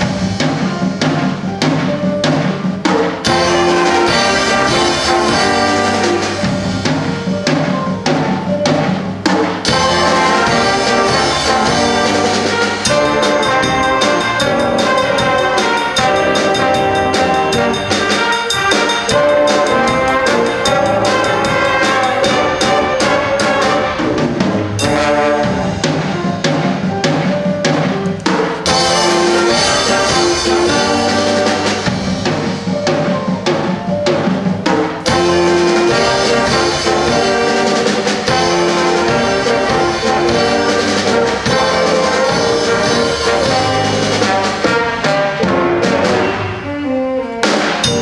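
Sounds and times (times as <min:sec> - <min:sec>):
brass band with drum kit: 0:00.0 - 0:48.0.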